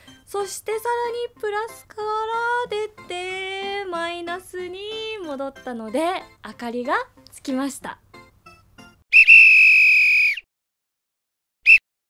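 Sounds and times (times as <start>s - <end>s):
whistle-like logo sting: 9.1s - 10.5s, 11.6s - 11.8s.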